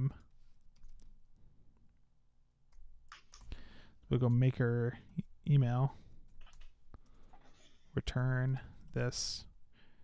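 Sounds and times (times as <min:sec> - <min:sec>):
keyboard keys clicking: 0:00.2 - 0:01.2.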